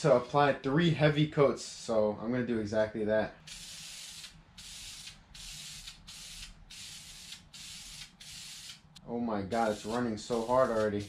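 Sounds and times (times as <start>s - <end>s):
aerosol spray can hissing: 3.4s - 8.9s, 9.5s - 11.0s.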